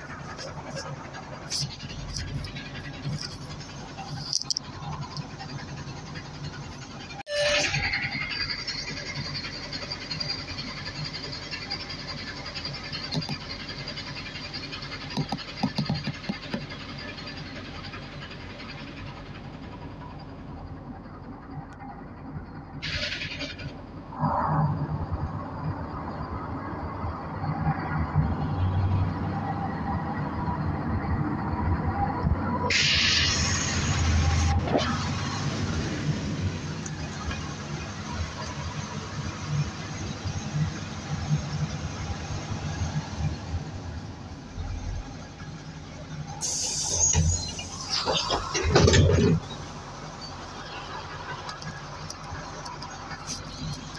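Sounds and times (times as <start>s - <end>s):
bus engine drone: 0.0s - 53.9s
road noise: 0.0s - 53.9s
short hisses: 46.4s - 47.6s.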